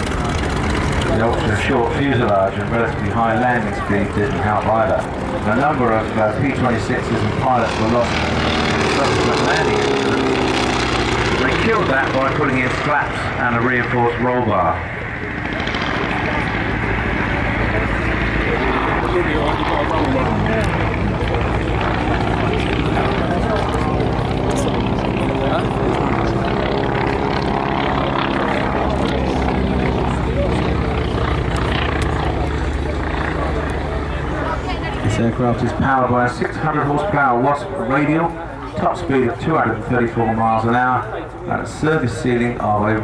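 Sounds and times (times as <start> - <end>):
radial aircraft engine flying past: 0.0 - 43.0.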